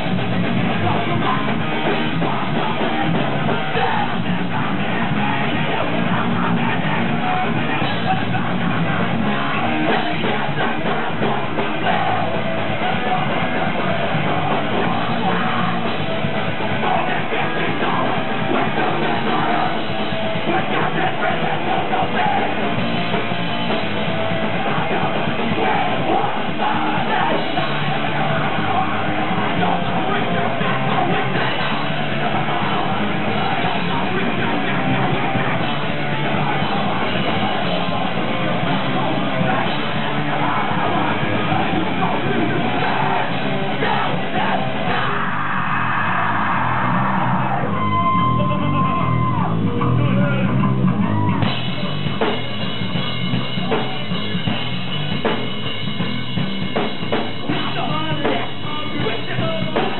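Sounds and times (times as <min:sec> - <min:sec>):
shouted vocals: 0:00.0 - 0:52.0
drum kit: 0:00.0 - 0:59.9
electric guitar: 0:00.0 - 0:59.9
metal band playing: 0:00.0 - 0:59.9.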